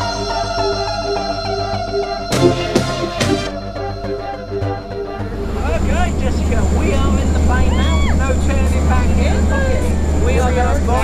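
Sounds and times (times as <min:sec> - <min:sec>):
propeller plane engine drone: 0:05.2 - 0:11.0.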